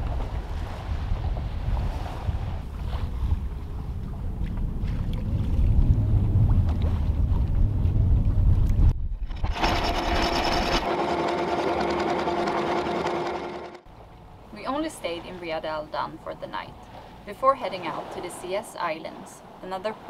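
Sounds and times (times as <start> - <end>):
water rushing along hull: 0.0 - 8.5, 9.3 - 20.0
wind buffeting microphone: 0.0 - 9.8
anchor windlass whirring: 5.5 - 14.0
anchor chain rattling: 9.2 - 13.8.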